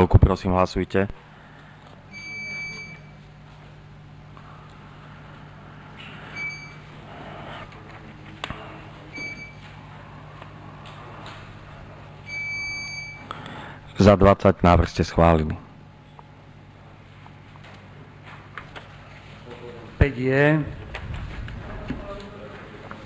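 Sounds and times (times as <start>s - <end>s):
low sound system hum: 0.0s - 23.0s
electronic voting system beeps: 2.1s - 3.2s, 6.3s - 6.9s, 9.1s - 9.8s, 12.2s - 13.3s.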